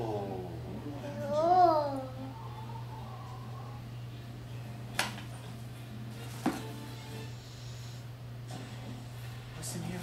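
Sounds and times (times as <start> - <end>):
background music from tv: 0.0 - 10.0.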